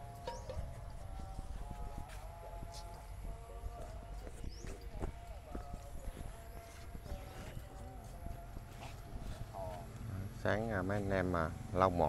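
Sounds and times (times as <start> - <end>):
faint voices: 0.0 - 12.0
footsteps on stone paving: 0.2 - 10.1.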